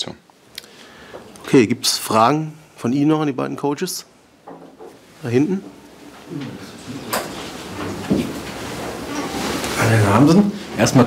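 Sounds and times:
rustling: 4.6 - 10.8
microphone handling knocks: 7.9 - 8.5.

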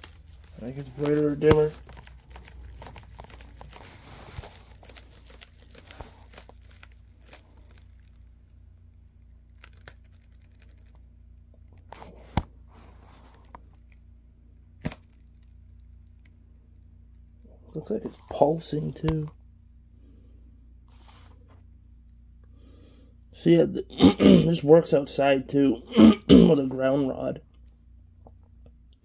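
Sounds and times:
aluminum foil crinkling: 0.0 - 12.2, 12.8 - 14.0, 14.8 - 17.3.

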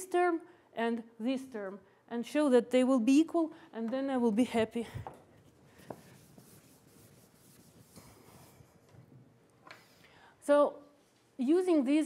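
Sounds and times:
cloth wiping chalkboard: 5.7 - 9.1.

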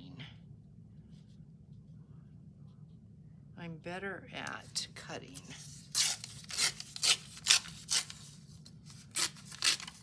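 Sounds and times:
paper tearing along a ruler: 5.8 - 10.0.

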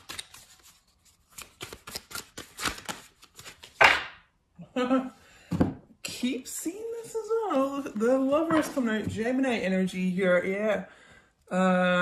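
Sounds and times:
cards being shuffled: 0.0 - 4.1
person laughing: 4.6 - 5.2.

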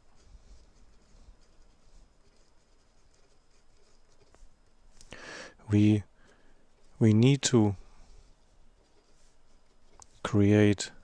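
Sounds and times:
felt-tip pen scratching on paper: 0.0 - 4.6.

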